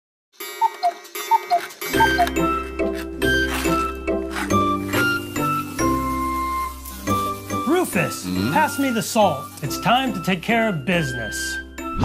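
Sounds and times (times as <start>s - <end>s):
cuckoo clock calling: 0.4s - 7.0s.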